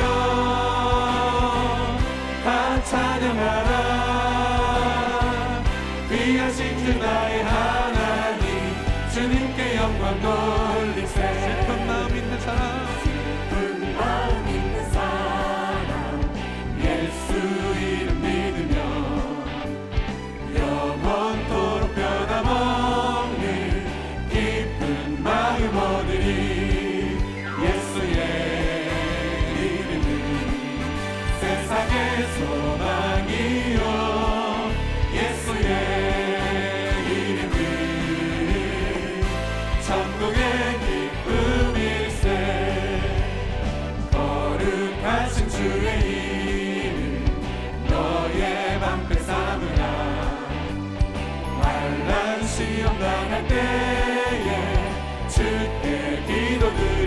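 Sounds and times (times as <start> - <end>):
band with bass: 0.0 - 57.0
choir singing worship song: 0.0 - 57.0.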